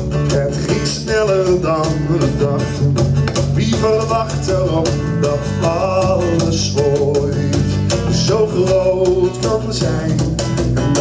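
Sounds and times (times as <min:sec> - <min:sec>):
acoustic guitars strummed: 0:00.0 - 0:11.0
bass guitar: 0:00.0 - 0:11.0
person singing: 0:00.3 - 0:10.3.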